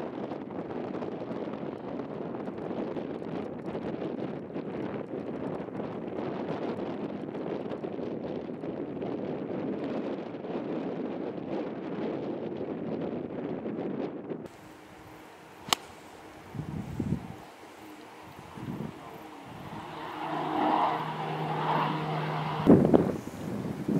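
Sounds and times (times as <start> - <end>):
wind buffeting microphone: 0.0 - 23.9.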